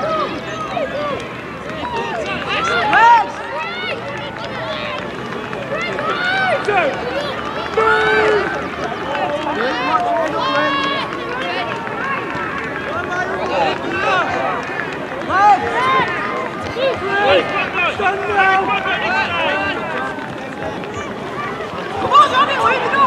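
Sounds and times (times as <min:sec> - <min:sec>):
children shouting and calling out: 0:15.3 - 0:23.0.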